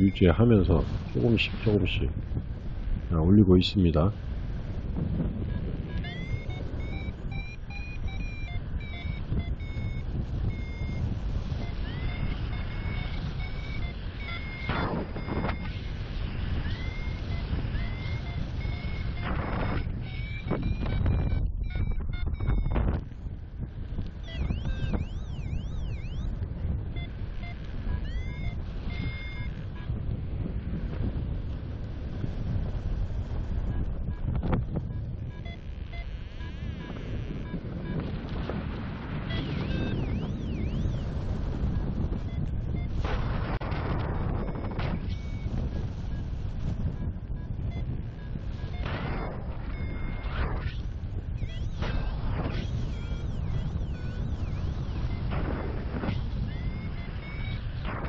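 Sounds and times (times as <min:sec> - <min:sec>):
variometer beeping: 0:00.0 - 0:02.1, 0:05.2 - 0:23.2, 0:24.0 - 0:30.1, 0:32.2 - 0:58.0
wind rush on microphone: 0:00.0 - 0:58.0.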